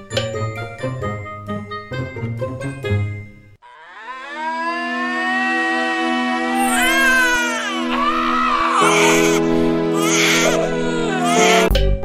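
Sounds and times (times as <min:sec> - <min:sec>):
background music with held chords: 0:00.0 - 0:03.6, 0:05.0 - 0:12.0
cartoon wailing sobs: 0:03.6 - 0:11.8.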